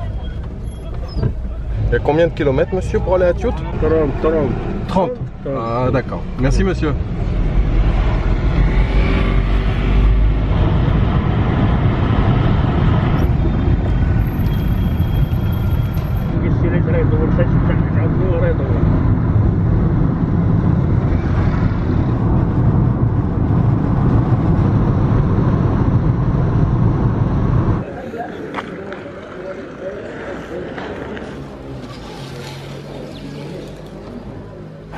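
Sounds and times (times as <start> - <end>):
road and engine noise in cabin: 0.0 - 8.2, 10.0 - 27.9.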